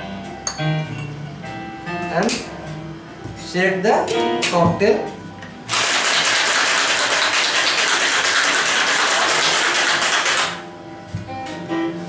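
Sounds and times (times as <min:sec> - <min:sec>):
ice rattling in cocktail shaker: 0:05.7 - 0:10.6.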